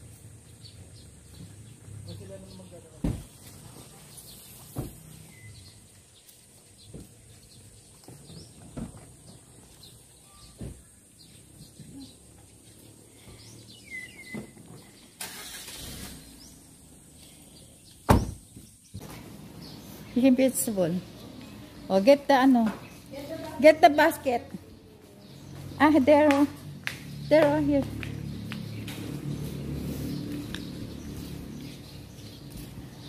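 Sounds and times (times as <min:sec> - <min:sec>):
bird chirps: 0:04.1 - 0:08.8, 0:11.2 - 0:15.1.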